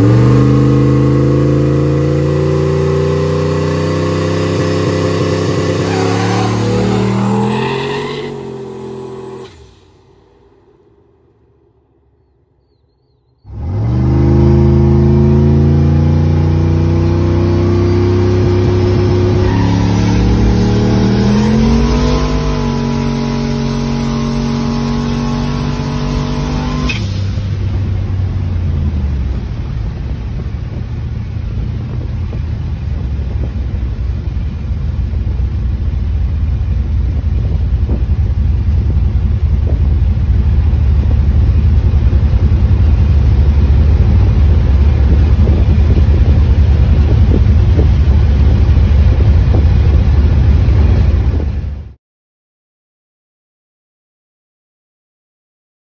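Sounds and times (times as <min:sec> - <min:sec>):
car engine accelerating: 0:00.0 - 0:12.3, 0:13.4 - 0:52.0
road noise inside car: 0:00.0 - 0:12.3, 0:13.4 - 0:52.0.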